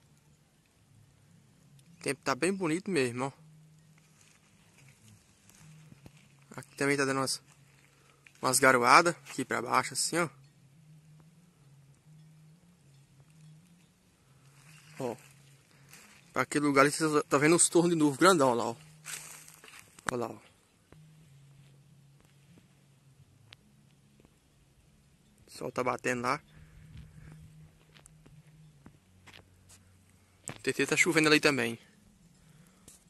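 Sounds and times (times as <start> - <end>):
faint low steady hum: 0.0 - 33.0.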